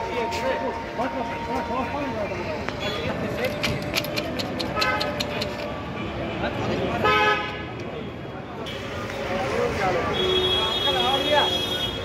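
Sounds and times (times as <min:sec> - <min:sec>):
people chattering: 0:00.0 - 0:12.0
street traffic: 0:00.0 - 0:12.0.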